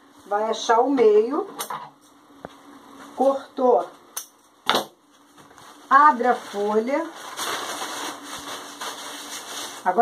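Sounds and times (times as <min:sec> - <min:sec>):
paper rustling and crinkling: 0:05.1 - 0:10.0.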